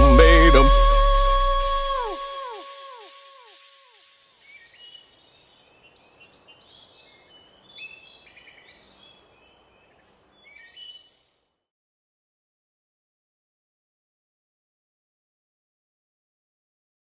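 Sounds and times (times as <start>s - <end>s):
faint birdsong chirps and trills: 4.0s - 11.7s.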